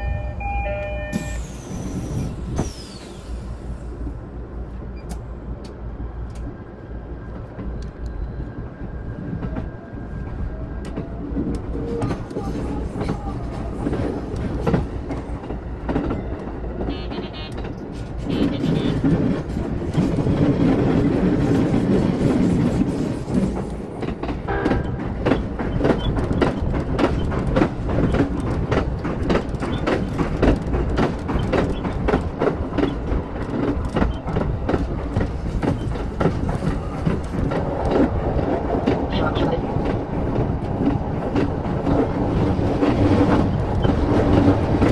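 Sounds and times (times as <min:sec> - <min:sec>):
train wheels rumbling on rails: 0:00.8 - 0:44.9
train clattering over steel bridge: 0:09.2 - 0:44.9.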